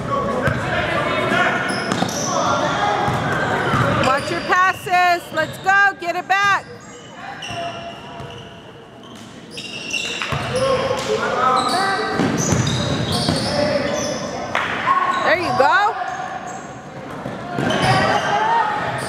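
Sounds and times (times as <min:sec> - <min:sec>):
sneakers squeaking: 0:00.3 - 0:19.0.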